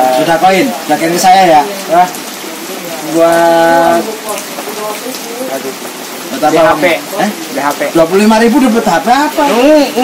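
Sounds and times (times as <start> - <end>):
faint voices: 0.0 - 10.0
rain hissing: 0.0 - 10.0.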